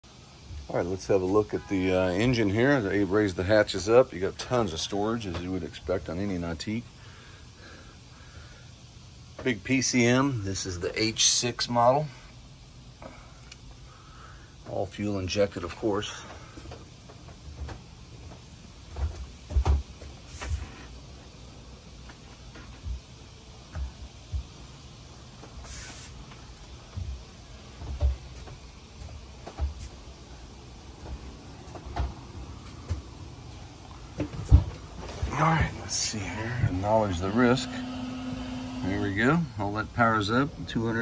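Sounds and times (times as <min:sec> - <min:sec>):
brief hiss: 0:20.2 - 0:21.0, 0:25.6 - 0:26.4
footsteps on boat deck: 0:30.9 - 0:35.5.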